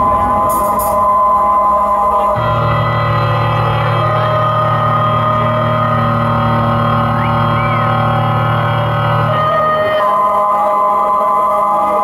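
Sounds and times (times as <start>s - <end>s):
synthesizer drone chord: 0.0s - 12.0s
short whistle: 7.1s - 8.3s.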